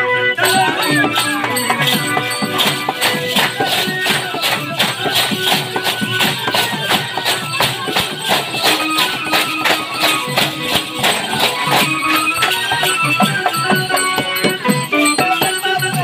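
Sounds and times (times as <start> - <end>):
fast percussion beat: 0.4 - 16.0
held melody notes: 0.4 - 16.0.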